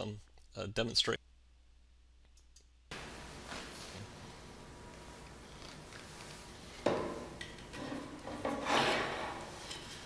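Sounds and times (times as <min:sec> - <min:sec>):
board and hammer rubbing and knocking: 0:06.9 - 0:10.0.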